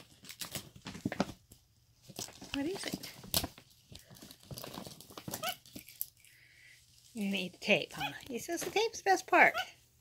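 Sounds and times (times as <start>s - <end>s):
plastic bag rustling: 0.0s - 6.3s.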